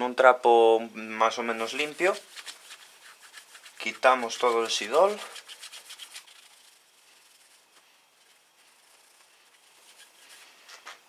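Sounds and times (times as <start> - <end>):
quiet hiss: 0.0 - 11.0
cloth rubbing on metal: 1.4 - 10.8.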